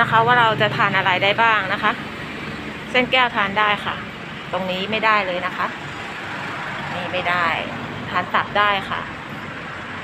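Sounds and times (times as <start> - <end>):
woman speaking: 0.0 - 2.1, 2.9 - 5.8, 6.8 - 9.2
steady background noise: 0.0 - 10.0.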